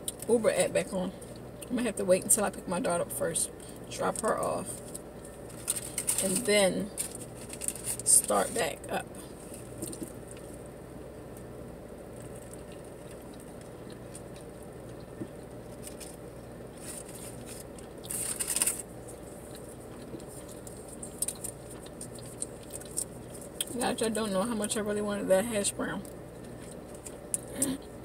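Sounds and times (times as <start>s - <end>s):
steady low hum: 0.0s - 28.0s
food chewing: 3.6s - 23.8s, 26.0s - 28.0s
paper wrapper crinkling: 4.8s - 8.6s, 16.8s - 23.6s.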